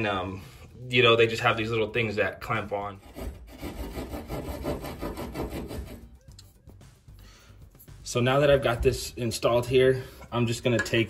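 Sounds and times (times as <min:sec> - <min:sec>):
hand tools scraping wood: 0:03.0 - 0:06.1.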